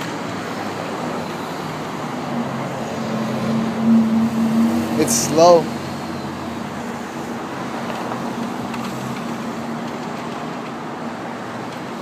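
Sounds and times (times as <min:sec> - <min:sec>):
street traffic noise: 0:00.0 - 0:12.0
low engine hum: 0:02.0 - 0:09.8.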